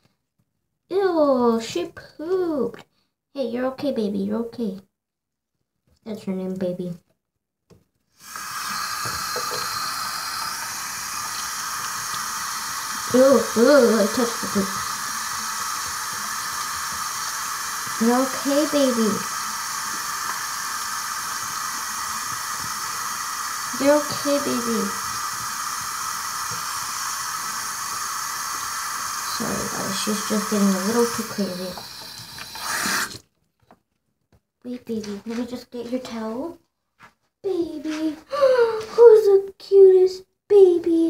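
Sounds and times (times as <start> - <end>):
faucet turned on: 8.2 - 33.2
steady hiss: 8.2 - 33.2
tap water running into sink: 8.2 - 33.2.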